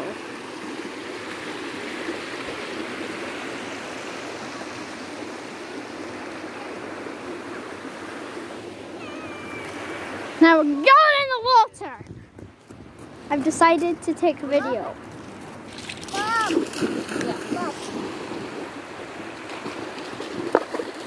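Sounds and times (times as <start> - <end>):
stream rushing over stones: 0.0 - 12.0, 13.3 - 21.0.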